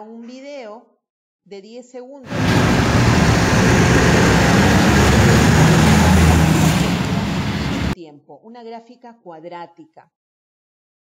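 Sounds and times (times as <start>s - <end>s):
truck accelerating: 2.3s - 8.0s.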